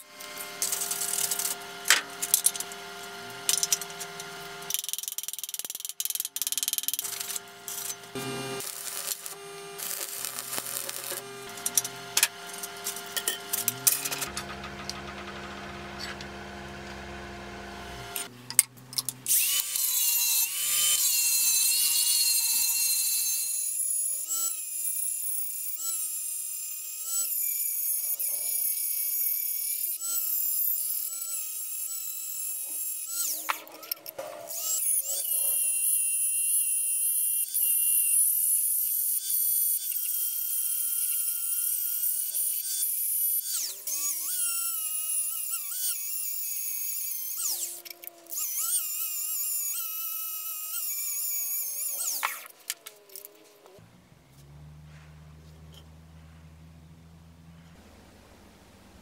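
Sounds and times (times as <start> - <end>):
angle grinder grinding steel: 0.0 - 56.0.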